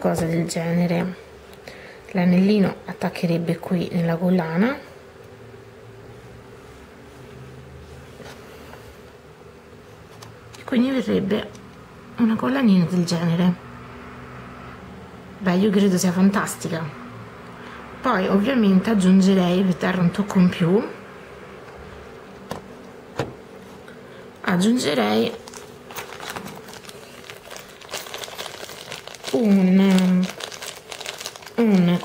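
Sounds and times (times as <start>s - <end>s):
steady low hum: 0.0s - 32.0s.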